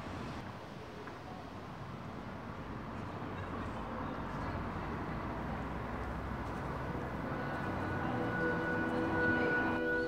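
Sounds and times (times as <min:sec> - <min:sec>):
street traffic rumble: 0:00.0 - 0:10.0
car passing: 0:05.1 - 0:10.0
high held musical note: 0:07.3 - 0:10.0.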